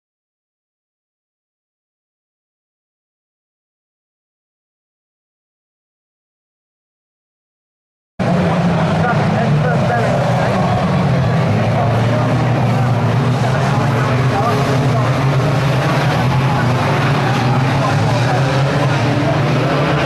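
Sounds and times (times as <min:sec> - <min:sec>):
racing car engines: 0:08.2 - 0:20.0
voices: 0:08.3 - 0:20.0.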